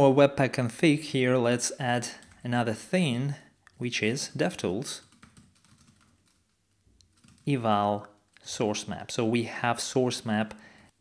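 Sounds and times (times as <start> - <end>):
typing on a computer keyboard: 2.1 - 2.4, 5.0 - 7.5.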